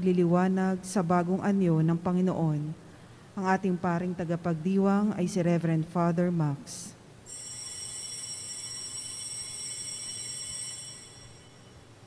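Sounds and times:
bell ringing: 0:07.3 - 0:11.9.

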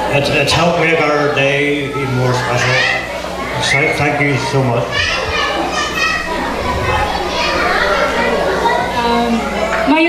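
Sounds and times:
children's voices: 0:00.0 - 0:10.0
many voices talking: 0:00.0 - 0:10.0.

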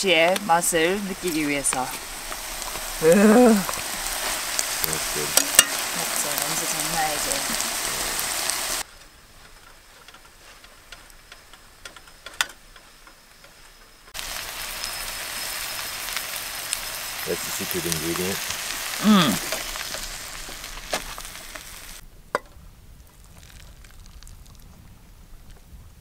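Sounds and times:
rice sizzling in a pan: 0:00.0 - 0:22.0, 0:23.0 - 0:24.7.

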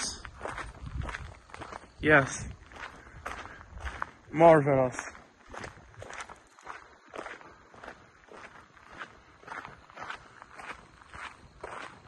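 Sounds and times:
footsteps on woodland trail: 0:00.0 - 0:12.0.

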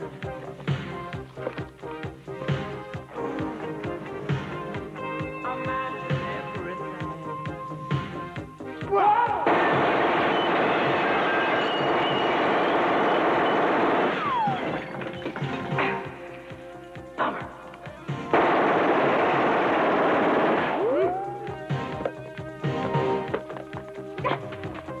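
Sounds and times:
automatic gunfire: 0:09.5 - 0:14.8, 0:18.3 - 0:20.9
scattered shots and impacts: 0:09.5 - 0:15.0, 0:18.3 - 0:20.9.

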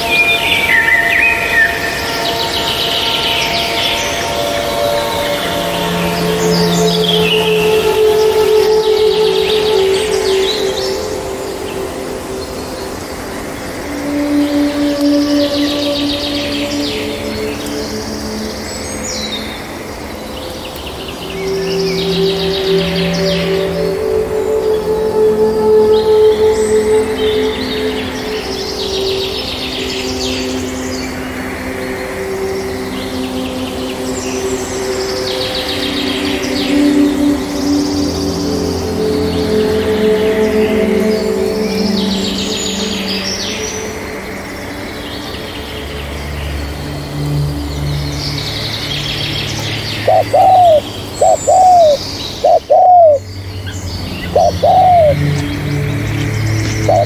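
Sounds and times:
soft music with held notes: 0:00.0 - 0:57.0
small birds chirping: 0:32.8 - 0:57.0
dove cooing: 0:50.1 - 0:53.2, 0:54.3 - 0:55.2.

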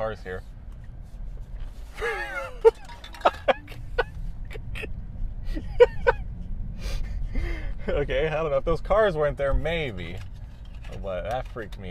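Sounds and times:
road noise inside car cabin: 0:00.0 - 0:11.9
man laughing: 0:02.0 - 0:06.3.

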